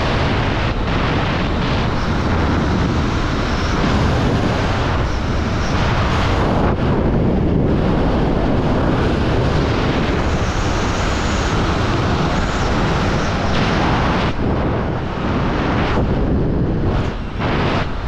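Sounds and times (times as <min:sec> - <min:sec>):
wind roaring over microphone: 0:00.0 - 0:18.0.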